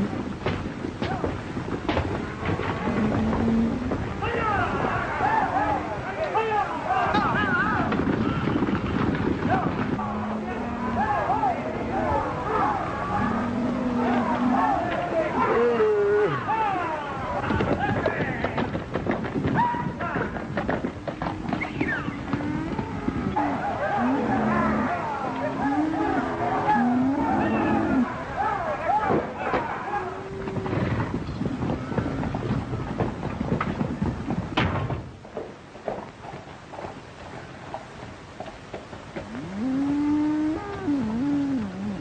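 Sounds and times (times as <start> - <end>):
animals calling: 21.1 - 30.8, 39.2 - 42.0.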